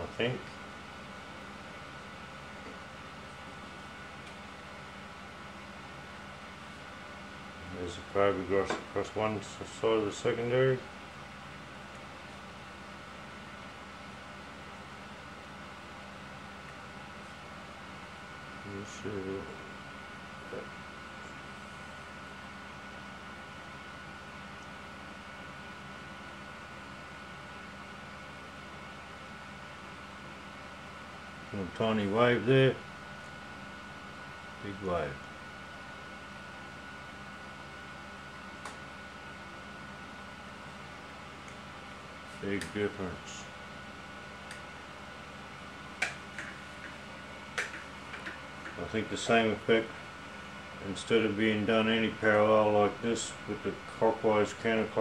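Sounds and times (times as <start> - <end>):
background hiss and low hum: 0.0 - 55.0.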